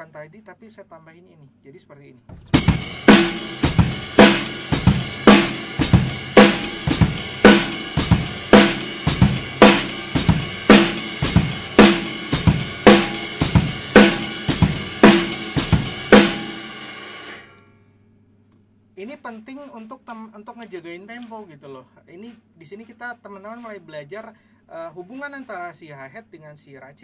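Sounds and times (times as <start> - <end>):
bass drum and snare: 2.3 - 17.3
hi-hat closing: 2.6 - 17.4.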